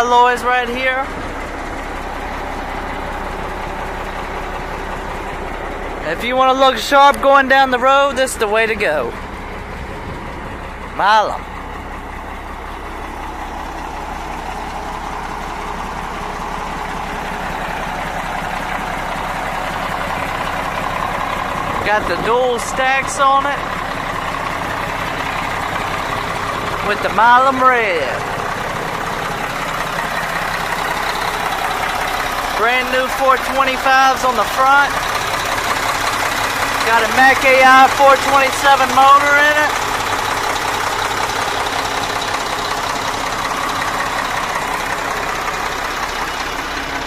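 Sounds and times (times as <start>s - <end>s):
diesel truck engine idling: 0.0s - 47.0s.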